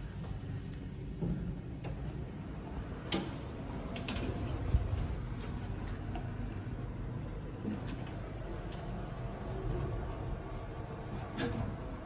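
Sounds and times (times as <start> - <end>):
elevator machine hum: 0.0 - 12.0.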